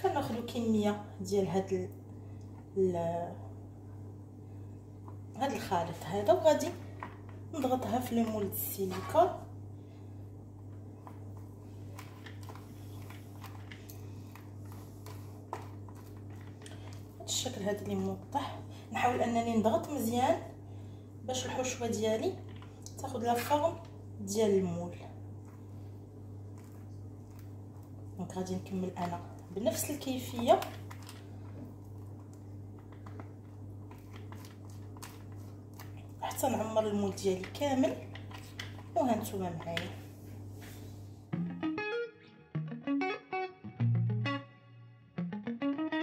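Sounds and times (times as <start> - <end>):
steady low hum: 0.0 - 41.6.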